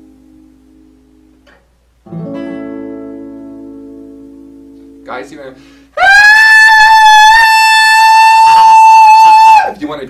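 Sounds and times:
acoustic guitar chords strummed: 0.0s - 5.8s.

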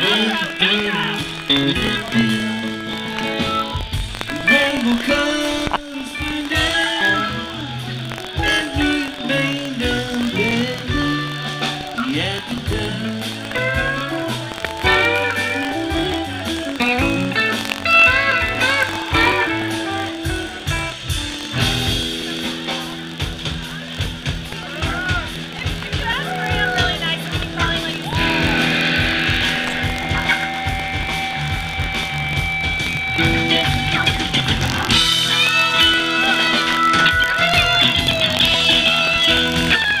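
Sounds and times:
lead guitar with bent notes: 0.0s - 40.0s
live rock band: 0.0s - 40.0s.

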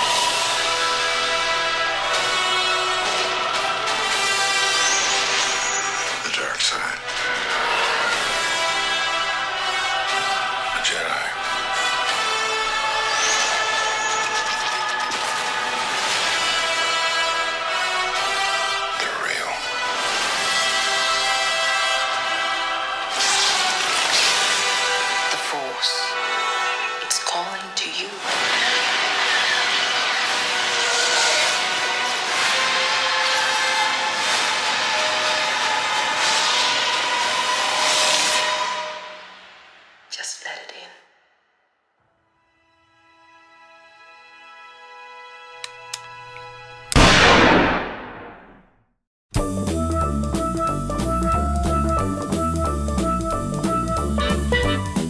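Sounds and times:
orchestral music: 0.0s - 39.5s, 49.4s - 55.0s
explosion blasts: 47.0s - 48.7s.

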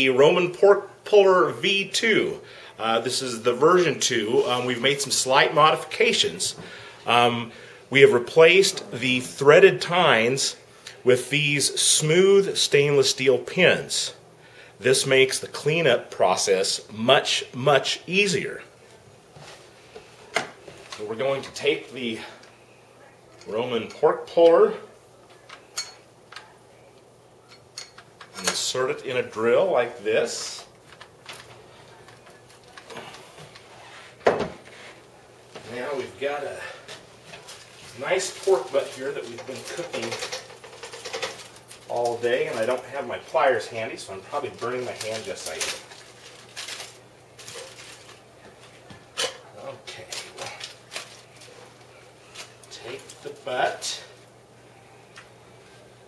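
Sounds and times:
aluminium foil crinkling: 30.5s - 33.6s, 37.2s - 54.1s.

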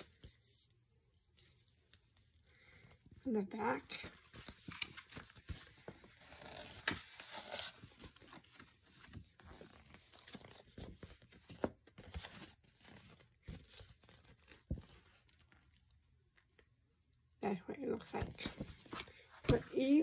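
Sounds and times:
paper rustling and crinkling: 3.8s - 16.6s, 18.0s - 20.0s.

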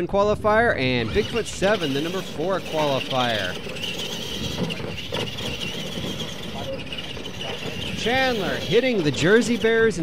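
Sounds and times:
electric motor whine: 1.0s - 10.0s.

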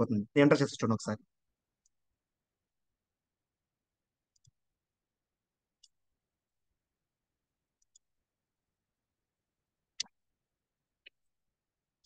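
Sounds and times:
person speaking: 0.0s - 1.3s.

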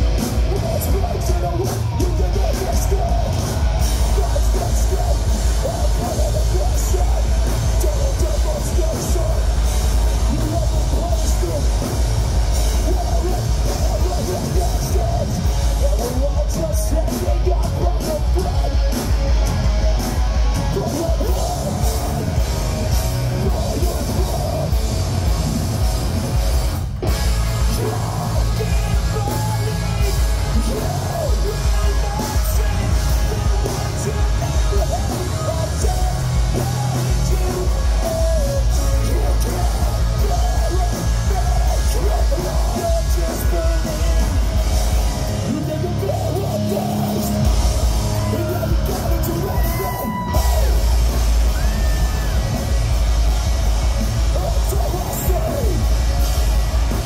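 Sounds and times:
punk band playing: 0.0s - 57.0s
singer shouting into microphone: 45.4s - 52.7s.

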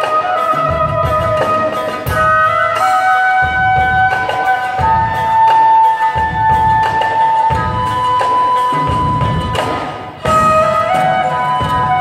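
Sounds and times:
bamboo flute melody: 0.0s - 12.0s
plucked lute: 0.0s - 12.0s.

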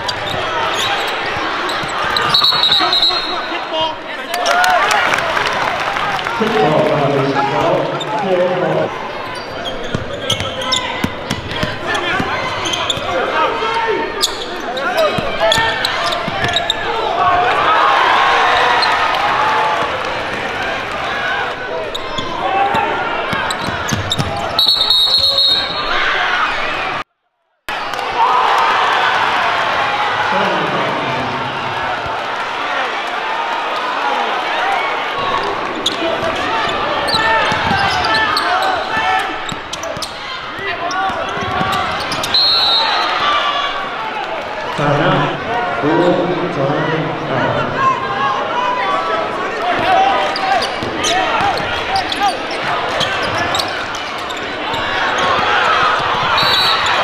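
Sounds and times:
crowd chatter and shouting: 0.0s - 27.0s, 27.7s - 57.0s
referee's whistle: 2.2s - 3.6s, 24.2s - 26.1s, 42.1s - 43.3s, 56.3s - 57.0s.

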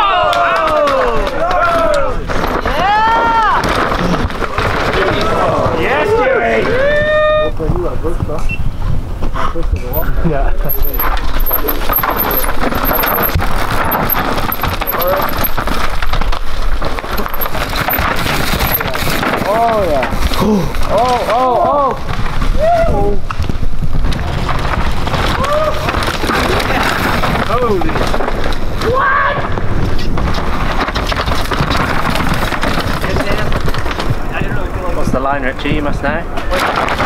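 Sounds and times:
spectators whooping and yelling: 0.0s - 3.6s, 5.9s - 7.6s, 22.5s - 23.2s, 25.3s - 26.0s
bikes clattering over rocks: 0.0s - 7.0s, 9.2s - 37.0s
rush of tyre and trail noise: 0.0s - 37.0s.

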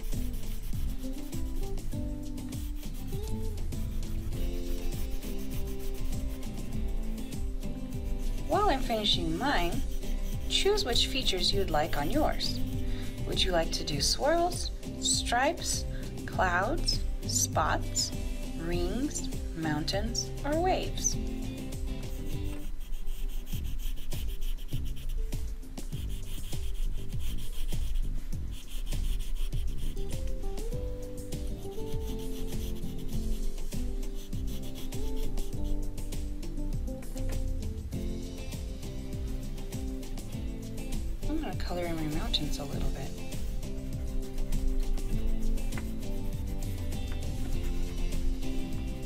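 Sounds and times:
crayon rubbing on paper: 0.0s - 37.5s, 38.3s - 49.0s
background music: 0.0s - 49.0s.

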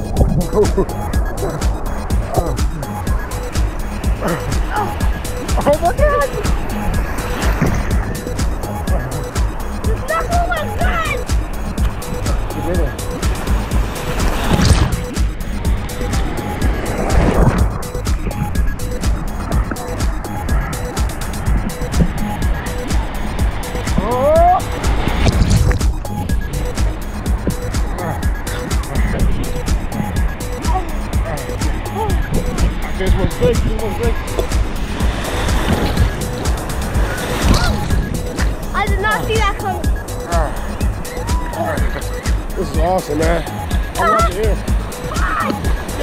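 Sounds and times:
ocean surf rushing: 0.0s - 46.0s
waves breaking: 0.0s - 46.0s
person crying out: 4.2s - 5.0s, 37.4s - 38.0s, 40.3s - 42.0s, 45.1s - 45.6s.

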